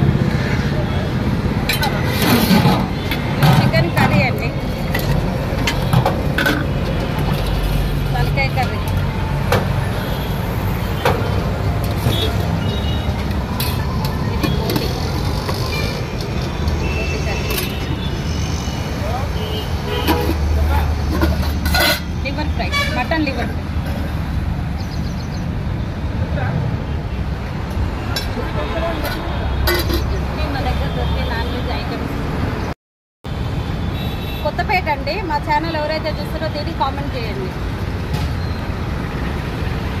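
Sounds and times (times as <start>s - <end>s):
vehicle engines rumbling: 0.0s - 40.0s.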